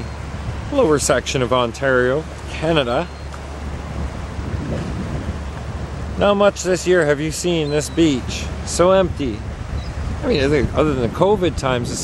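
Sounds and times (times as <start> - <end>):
small waves washing ashore: 0.0 - 12.0
wind rumbling on microphone: 0.0 - 12.0.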